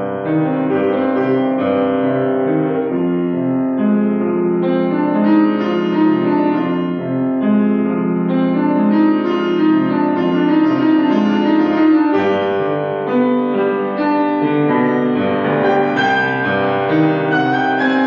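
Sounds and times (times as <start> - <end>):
solo grand piano: 0.0 - 18.0.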